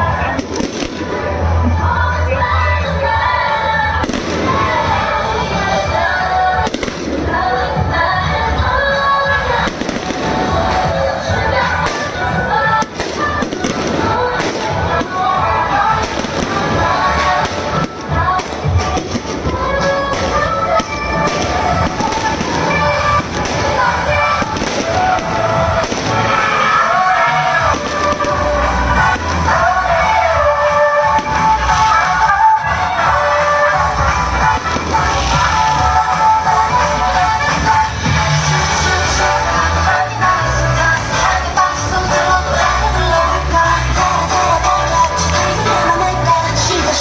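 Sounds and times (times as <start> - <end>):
firecrackers crackling: 0.0 - 1.8, 3.8 - 47.0
loud music with held tones: 0.0 - 47.0.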